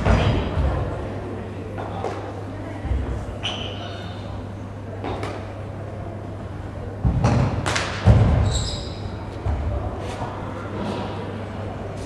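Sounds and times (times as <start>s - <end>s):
dull thuds in hall: 7.0s - 10.0s.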